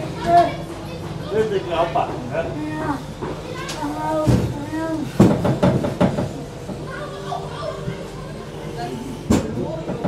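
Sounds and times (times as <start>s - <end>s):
voices in background: 0.0s - 5.5s, 6.2s - 10.0s
knocks and clatter on ride car: 5.2s - 6.8s, 9.3s - 10.0s.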